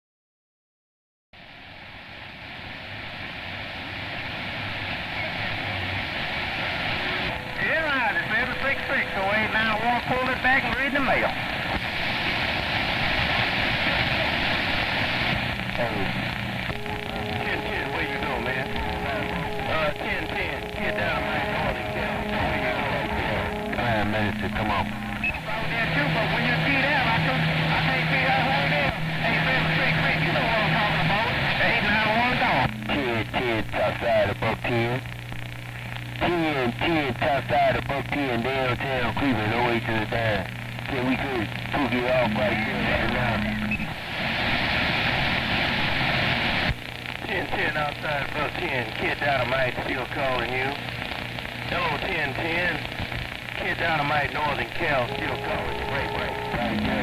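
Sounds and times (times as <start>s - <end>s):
radio static: 3.8s - 57.0s
garbled radio voices: 7.2s - 11.8s, 15.3s - 35.1s, 36.2s - 44.0s, 47.2s - 57.0s
steady heterodyne tones: 15.5s - 33.3s, 54.8s - 57.0s.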